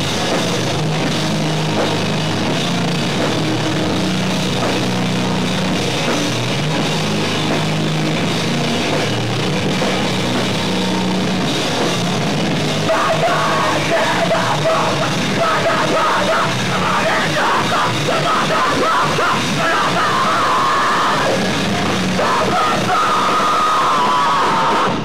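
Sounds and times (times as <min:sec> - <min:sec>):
distorted guitars: 0:00.0 - 0:25.0
drums: 0:00.0 - 0:25.0
yelled vocals: 0:00.0 - 0:25.0.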